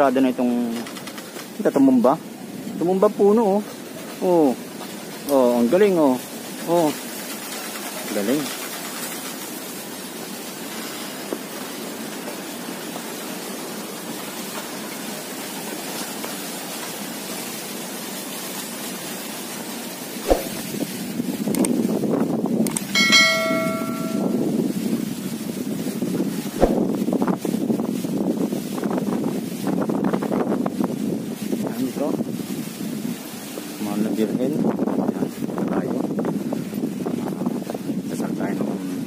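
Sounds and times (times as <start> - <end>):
steady outdoor noise: 0.0 - 39.0
sharp knocks: 20.2 - 20.7, 23.0 - 24.4, 26.6 - 26.9
bell strike ringing: 23.0 - 24.5.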